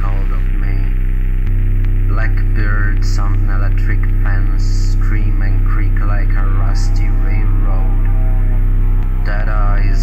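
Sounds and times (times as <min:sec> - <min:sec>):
low droning hum: 0:00.0 - 0:10.0.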